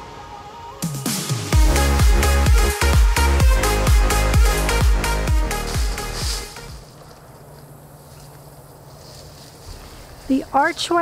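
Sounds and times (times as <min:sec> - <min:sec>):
electronic dance music: 0:00.8 - 0:06.8.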